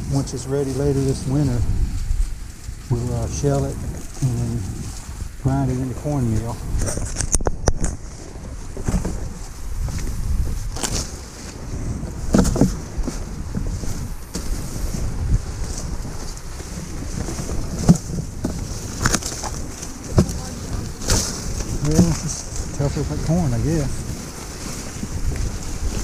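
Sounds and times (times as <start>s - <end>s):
dry corn stalks rustling: 0.0s - 26.0s
wind noise on microphone: 0.0s - 26.0s
corn ears snapping off: 10.0s - 11.2s, 17.7s - 22.8s.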